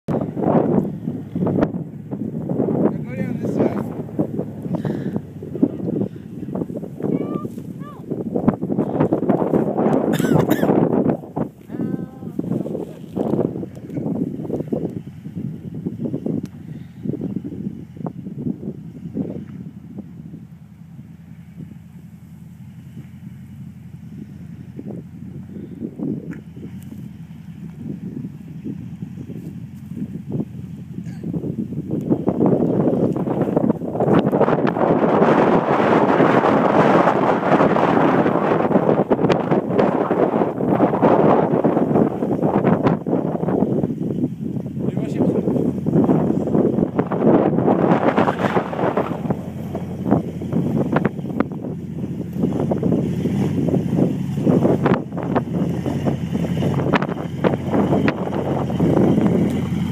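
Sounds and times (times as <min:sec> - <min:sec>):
truck engine under load: 0:00.0 - 0:59.9
wind buffeting microphone: 0:00.1 - 0:59.9.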